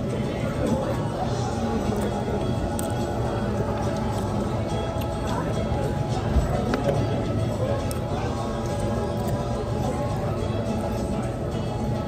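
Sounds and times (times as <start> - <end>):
background music: 0.0 - 12.0
restaurant chatter: 0.0 - 12.0.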